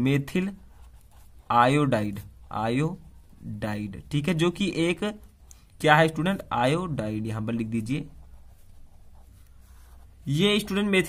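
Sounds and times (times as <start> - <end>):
pen scratching on paper: 0.3 - 10.9.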